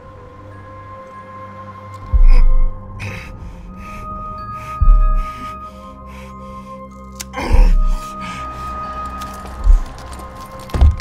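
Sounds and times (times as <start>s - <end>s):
deep bass boom: 2.2s - 3.3s, 4.8s - 5.5s.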